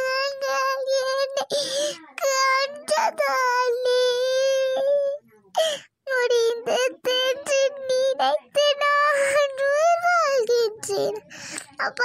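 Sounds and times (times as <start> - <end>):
high-pitched voice crying and wailing: 0.0 - 11.2.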